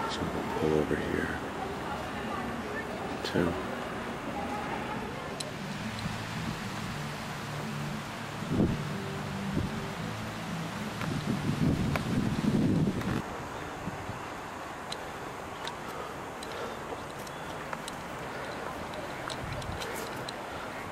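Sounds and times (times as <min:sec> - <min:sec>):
low outdoor hum: 0:00.0 - 0:20.9
wind buffeting microphone: 0:08.0 - 0:14.6, 0:17.1 - 0:20.9.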